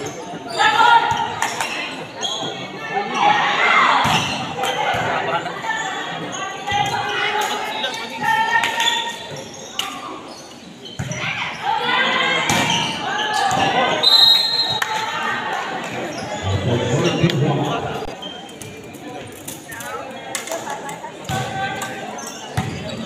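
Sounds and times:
players and spectators shouting: 2.7 - 9.8, 11.1 - 18.1.

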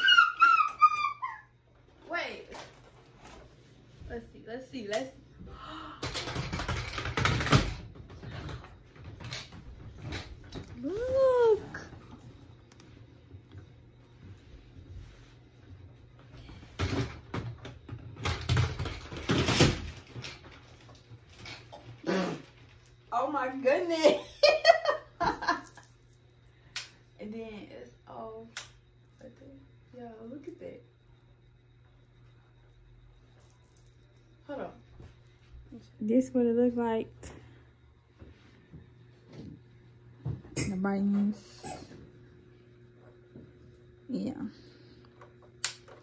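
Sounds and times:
high-pitched whining cry: 0.0 - 1.6.

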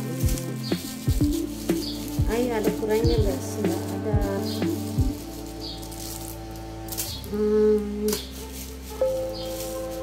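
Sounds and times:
background music held notes: 0.0 - 10.0.

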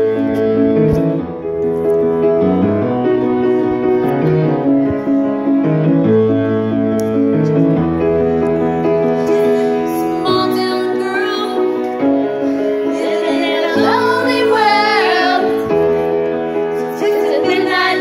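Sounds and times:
slow piano chords: 0.0 - 18.0.

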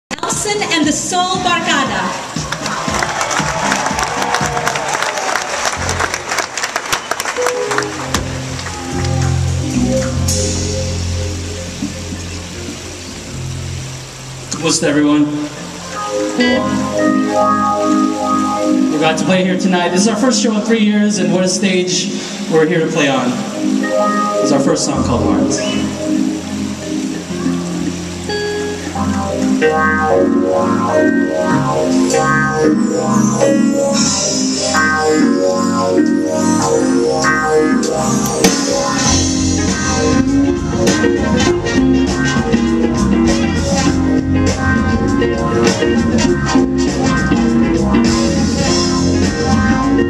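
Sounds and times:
live band playing instrumental: 0.1 - 50.0
sustained keyboard chords: 5.6 - 50.0.

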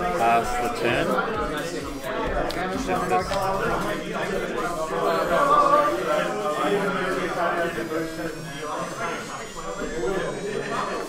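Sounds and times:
indistinct talking voices: 0.0 - 11.0.

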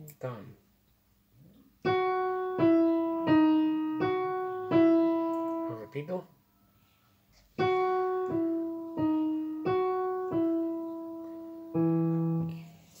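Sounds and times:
digital piano single notes: 1.9 - 6.3, 7.6 - 12.6.

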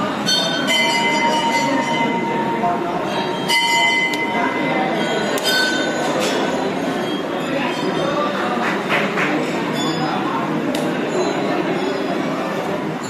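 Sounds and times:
murmur of crowd: 0.0 - 13.0
temple bells ringing: 0.0 - 13.0.

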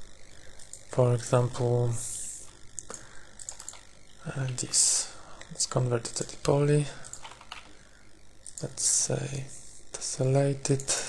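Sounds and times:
mouse and keyboard clicks: 3.4 - 3.8.

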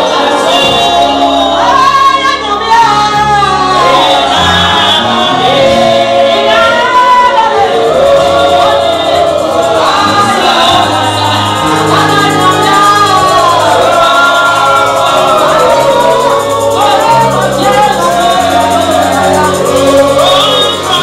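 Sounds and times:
congregation singing: 0.0 - 21.0
instrumental accompaniment: 2.7 - 21.0.

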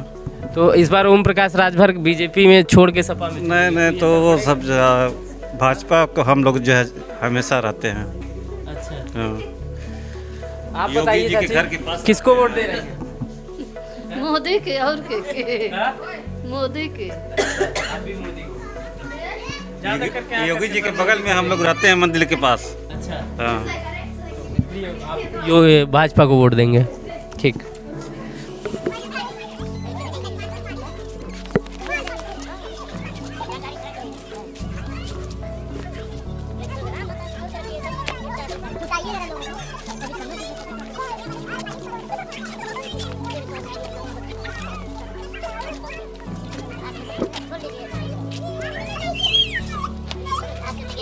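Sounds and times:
background music: 0.0 - 51.0
chatter of voices: 10.6 - 51.0
chickens clucking: 28.3 - 51.0.

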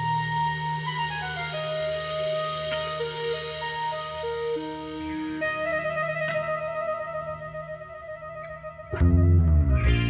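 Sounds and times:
electric guitar sustained notes: 0.0 - 10.0.

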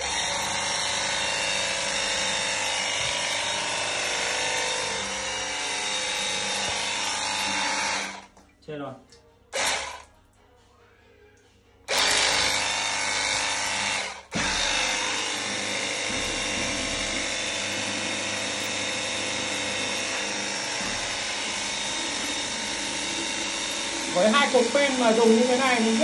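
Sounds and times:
pressure washer spraying water: 14.4 - 26.0.

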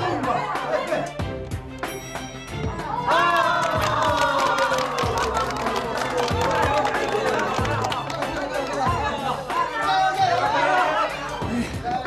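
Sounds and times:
background music: 0.0 - 12.0
excited chatter and cheering: 2.6 - 12.0
hand clapping: 3.2 - 9.2.

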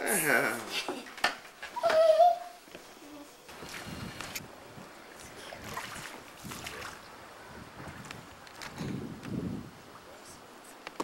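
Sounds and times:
wind rumbling on microphone: 3.5 - 10.5.

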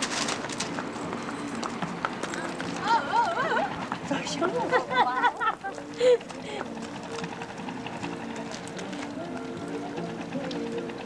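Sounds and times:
hooves clopping on pavement: 0.0 - 11.0.

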